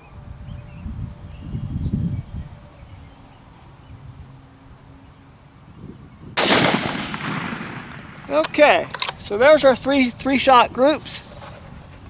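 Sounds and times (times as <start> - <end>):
rifle shot echoing: 6.4 - 9.2.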